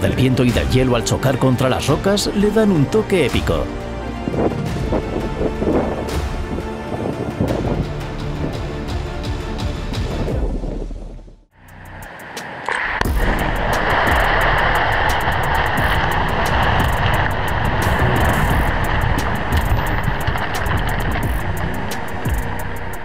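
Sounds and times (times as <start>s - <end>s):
rocks tumbling rumble: 13.0s - 23.0s.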